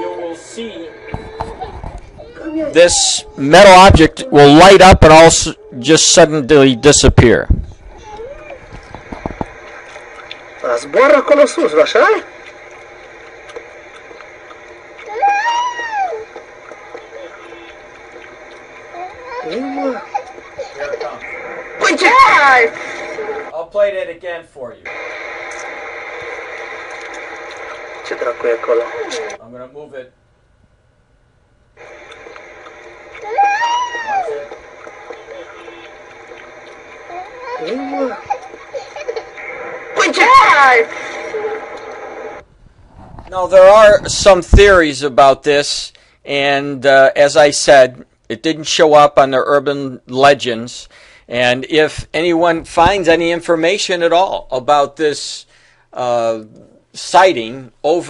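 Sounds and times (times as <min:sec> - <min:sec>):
outdoor background hiss: 0:00.0 - 0:58.0
steady hum with faint whine: 0:00.0 - 0:58.0
loud exclaiming voice: 0:40.0 - 0:40.9.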